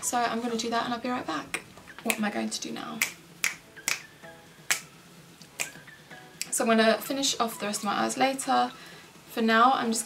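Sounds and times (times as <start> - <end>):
finger snapping: 3.0 - 4.1, 4.7 - 4.9, 5.5 - 5.8, 6.4 - 6.6.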